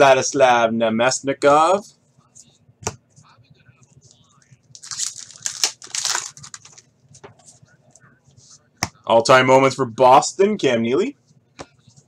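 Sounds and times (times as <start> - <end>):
wrapper ripping and rustling: 4.7 - 6.8.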